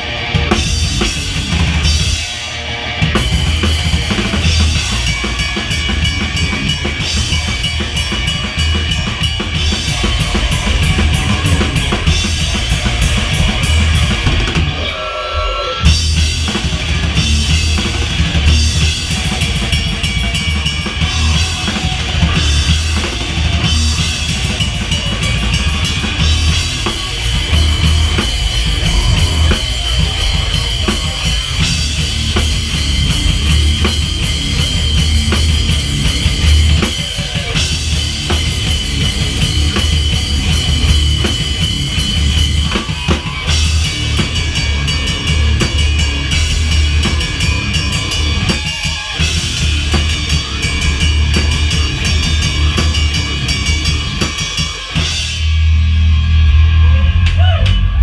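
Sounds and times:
pounding bass drum: 0.0 - 2.4, 3.0 - 15.0, 15.8 - 58.0
heavy rock band playing: 0.0 - 58.0.

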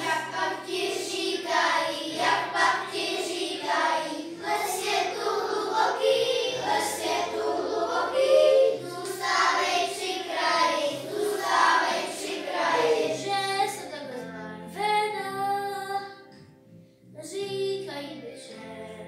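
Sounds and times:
children singing together: 0.0 - 13.8
instrumental accompaniment: 0.0 - 13.9.

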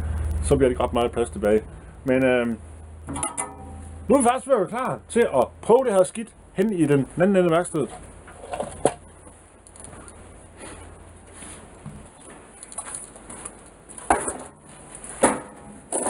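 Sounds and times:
metal cart handling clatter: 3.1 - 4.2, 12.9 - 16.0.

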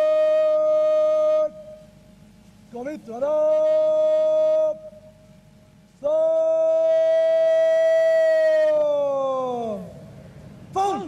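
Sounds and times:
man shouting commands: 2.8 - 5.0, 6.0 - 10.0, 10.7 - 11.0.

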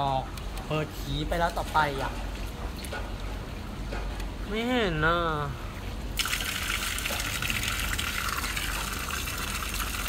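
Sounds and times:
water pouring from tap and splashing: 6.2 - 10.0.

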